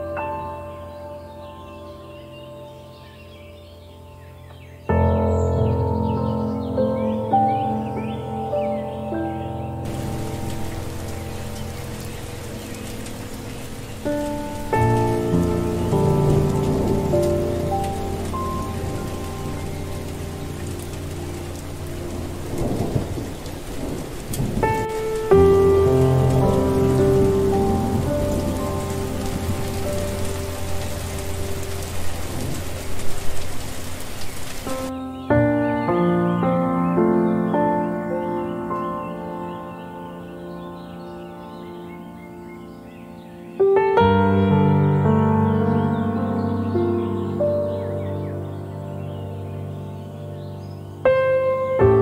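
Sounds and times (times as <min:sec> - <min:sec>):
soft meditation music: 0:00.0 - 0:52.0
thunder rumbling: 0:09.8 - 0:34.9
steady rain: 0:09.8 - 0:35.7, 0:37.4 - 0:52.0.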